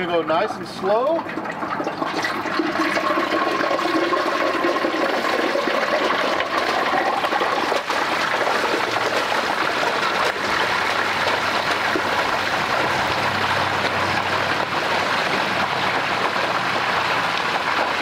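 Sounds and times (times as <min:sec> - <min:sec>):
frying oil bubbling and sizzling: 0:00.0 - 0:18.0.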